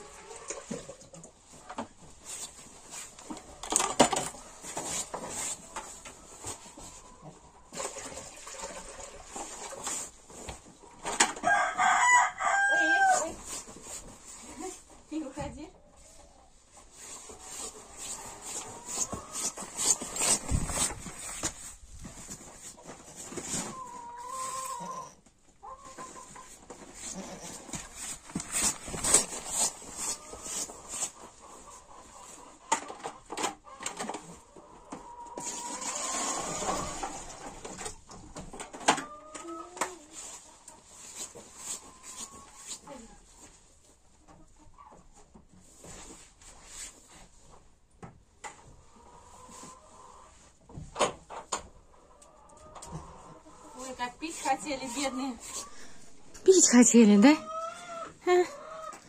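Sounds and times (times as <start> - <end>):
plastic buckets knocking and rustling: 0.0 - 11.6, 16.8 - 24.6, 25.7 - 48.8, 50.5 - 51.8
rooster crowing: 11.4 - 13.3.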